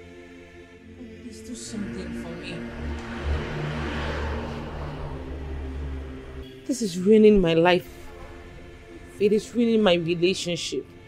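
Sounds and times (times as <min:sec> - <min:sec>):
sustained held chords: 0:00.7 - 0:09.2
deep low drone: 0:01.0 - 0:06.7.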